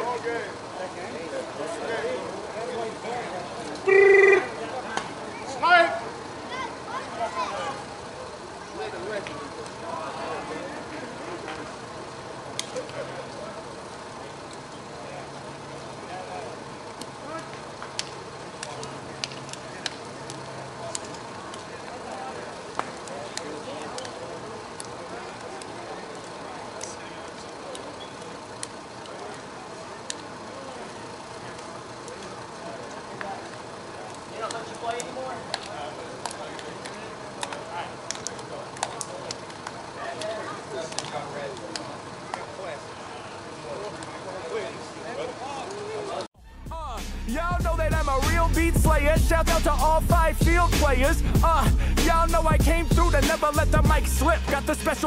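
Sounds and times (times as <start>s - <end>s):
distant chatter of players: 0.0s - 55.0s.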